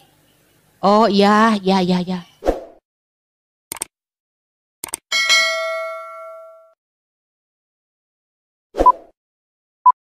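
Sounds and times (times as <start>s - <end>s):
quick double click: 3.7s - 3.9s, 4.8s - 5.0s
bright bell ding: 5.1s - 6.8s.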